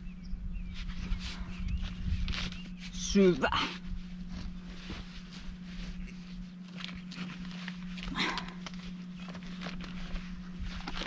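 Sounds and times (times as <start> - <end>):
faint bird chirping: 0.0 - 3.1
low hum: 0.0 - 11.0
soft rustling: 0.7 - 11.0.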